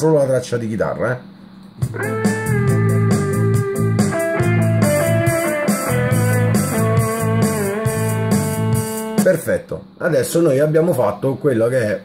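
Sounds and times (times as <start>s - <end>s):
keyboard backing track with beat: 1.7s - 9.4s
electric guitar melody: 1.9s - 9.2s.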